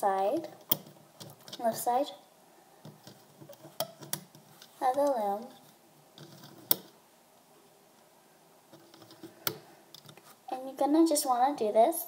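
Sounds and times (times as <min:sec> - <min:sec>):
rubber bands handling rustle: 0:00.0 - 0:02.0, 0:02.8 - 0:07.0, 0:08.6 - 0:10.5.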